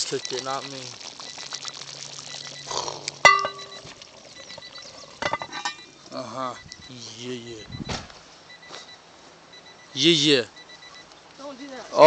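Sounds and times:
fine popping: 0:00.0 - 0:07.0
stew bubbling in a pot: 0:00.0 - 0:07.0
metallic clink: 0:03.2 - 0:03.8, 0:05.2 - 0:05.9.

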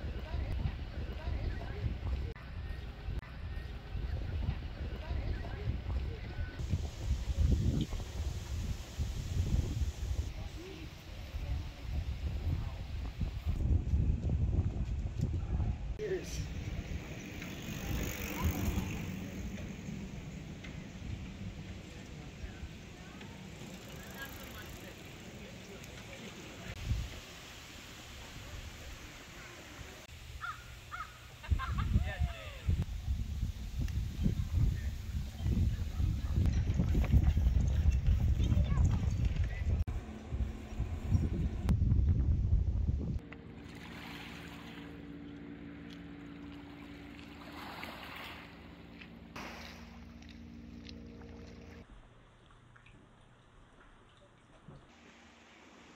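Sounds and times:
faint voices: 0:00.0 - 0:08.5, 0:15.4 - 0:26.8
wind rumbling on microphone: 0:00.0 - 0:24.7, 0:26.7 - 0:27.3, 0:29.8 - 0:43.2
small waves lapping: 0:16.2 - 0:31.1, 0:43.4 - 0:55.9
steady low hum: 0:39.0 - 0:53.8.

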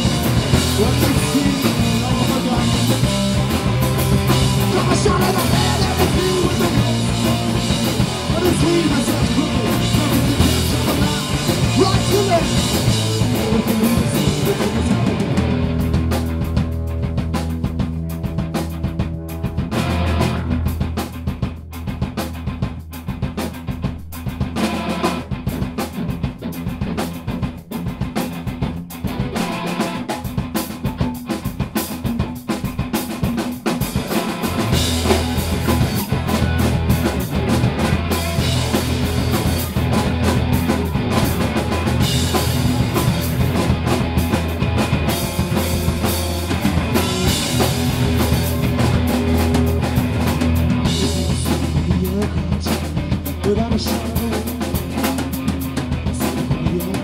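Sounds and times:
rock band playing: 0:00.0 - 0:57.0.

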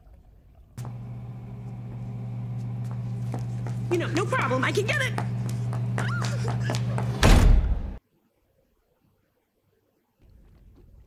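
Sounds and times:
person speaking: 0:03.6 - 0:06.7
loud heavy slam: 0:07.2 - 0:08.0.

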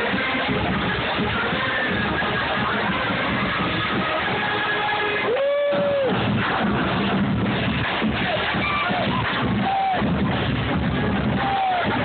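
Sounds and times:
crowd cheering: 0:00.0 - 0:12.0.

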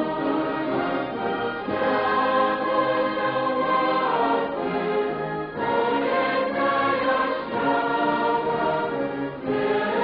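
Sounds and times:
choir singing a slow hymn: 0:01.7 - 0:10.0.

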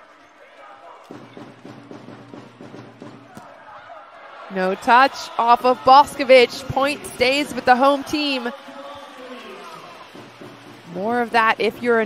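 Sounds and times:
rhythmic beat from stands: 0:01.1 - 0:03.6, 0:09.6 - 0:12.0.

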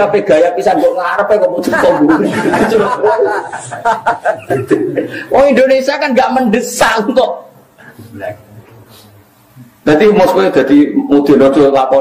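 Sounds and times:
person speaking: 0:00.0 - 0:12.0
person chuckling: 0:01.8 - 0:05.3.

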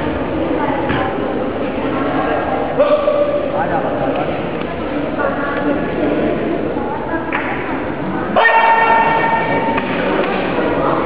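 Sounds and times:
crowded sports hall noise: 0:00.0 - 0:11.0.

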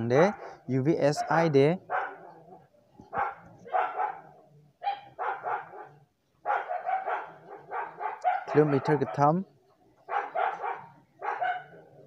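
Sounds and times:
dog barking: 0:00.2 - 0:09.4, 0:10.0 - 0:12.0.

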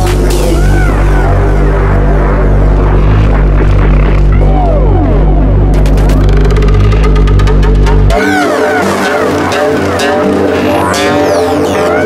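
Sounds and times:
heavy bass line: 0:00.0 - 0:12.0
synth lines with swooping notes: 0:00.0 - 0:12.0.

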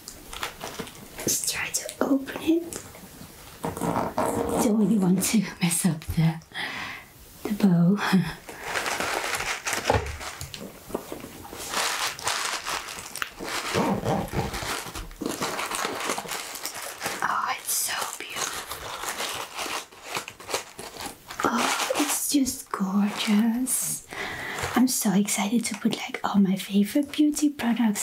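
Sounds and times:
zipper pulled open: 0:03.6 - 0:04.9, 0:13.4 - 0:14.9
fabric rustling: 0:08.5 - 0:23.8.

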